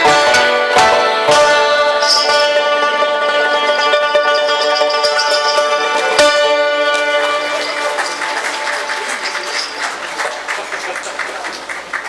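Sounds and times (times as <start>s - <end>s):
held music chord: 0.0s - 10.0s
audience applause: 5.8s - 12.0s.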